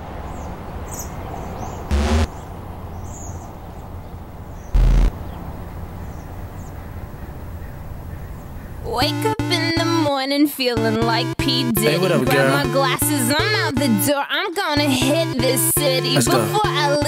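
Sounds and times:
low hum: 1.9s - 2.3s, 4.8s - 5.2s
song with singing: 10.8s - 14.2s, 14.8s - 17.0s.

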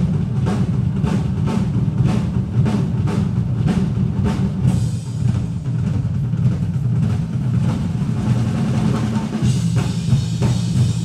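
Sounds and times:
drum kits rumbling: 0.0s - 11.0s.

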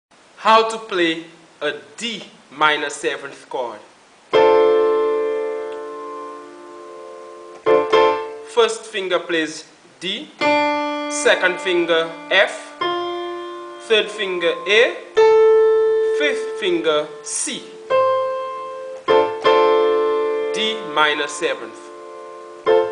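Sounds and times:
piano chord on keyboard: 4.3s - 8.6s, 10.4s - 22.9s.

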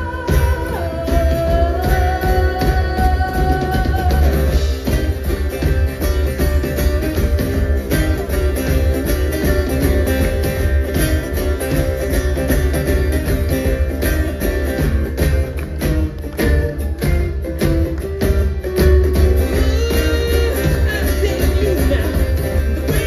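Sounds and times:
steady drum beat: 0.0s - 23.0s
strummed acoustic guitars: 0.0s - 23.0s.

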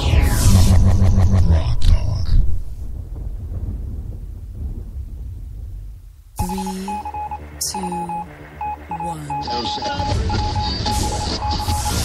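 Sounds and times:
low music bed: 6.4s - 11.4s
pulsing electronic beeps: 6.4s - 12.0s.

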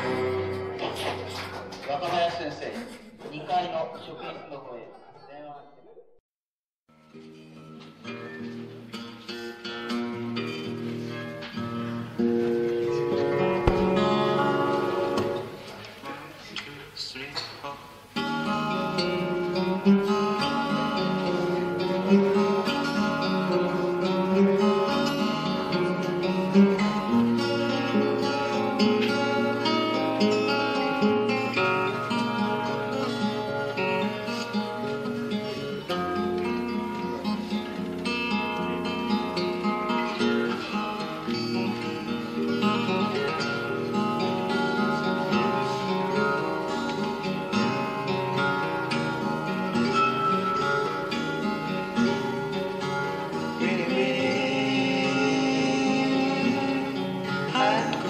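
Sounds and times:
acoustic guitars playing: 0.0s - 2.3s, 6.9s - 58.0s.

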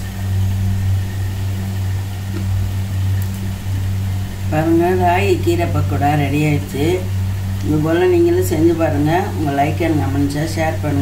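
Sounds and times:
motor humming: 0.0s - 11.0s.

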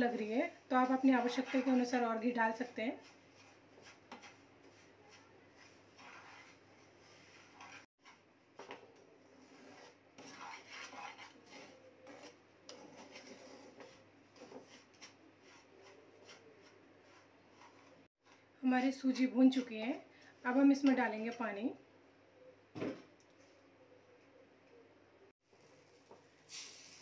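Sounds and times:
wooden spatula scraping a pan: 0.0s - 18.4s.

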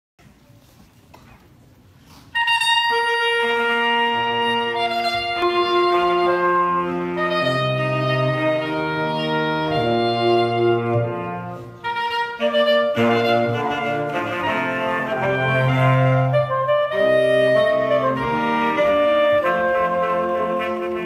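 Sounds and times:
saxophone quartet playing fanfare: 2.3s - 21.0s.

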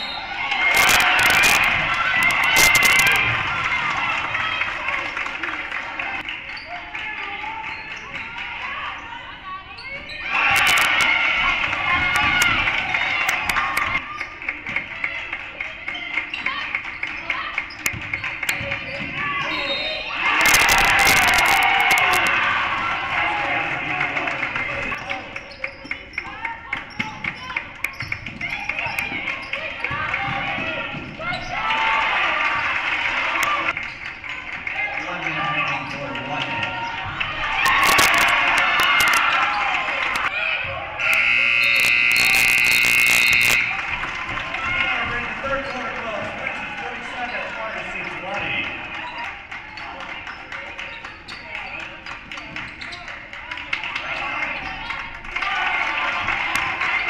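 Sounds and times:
crowd shouting and cheering: 0.0s - 57.0s
scoreboard horn: 41.0s - 43.8s.

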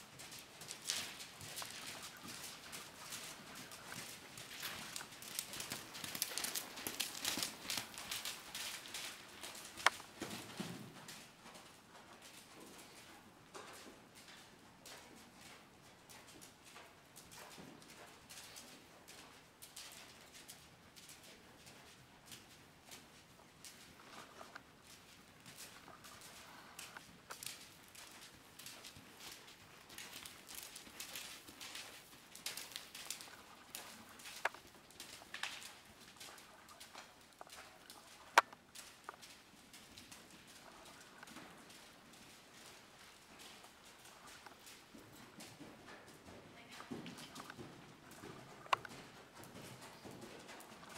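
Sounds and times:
horse hoofbeats on sand: 0.0s - 13.0s, 21.9s - 50.9s.

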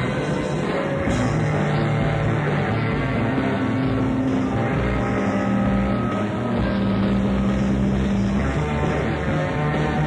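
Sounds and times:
jazz-rock band sustained chord: 0.0s - 10.0s.

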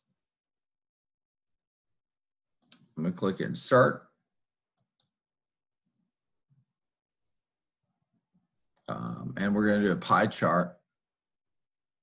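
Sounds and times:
computer mouse clicks: 2.6s - 2.9s, 4.8s - 5.2s.

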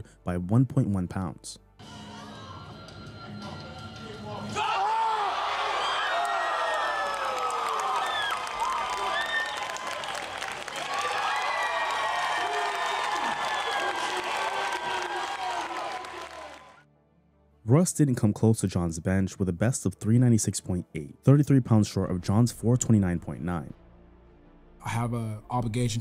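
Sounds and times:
crowd shouting and cheering: 4.3s - 16.8s
applause: 5.9s - 16.8s.

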